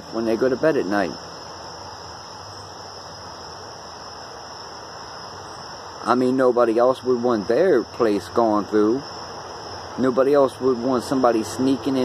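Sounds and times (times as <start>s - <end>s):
crickets chirping: 0.0s - 12.0s
faint hiss: 0.0s - 12.0s.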